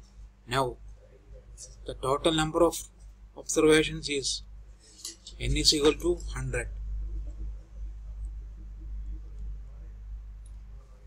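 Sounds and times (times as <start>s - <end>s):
electrical hum: 0.0s - 11.0s.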